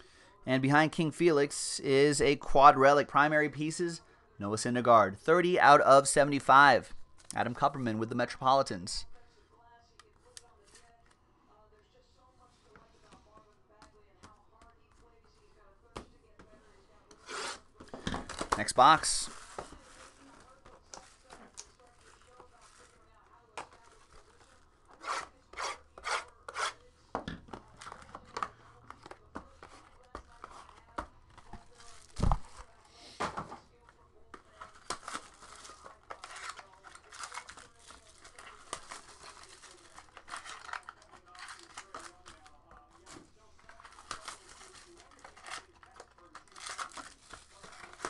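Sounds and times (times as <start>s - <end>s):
cardboard and plastic tearing: 17.2s - 23.1s, 34.5s - 48.0s.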